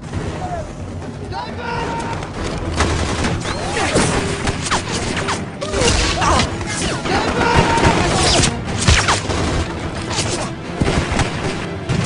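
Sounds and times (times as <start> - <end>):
film soundtrack music: 0.0 - 12.0.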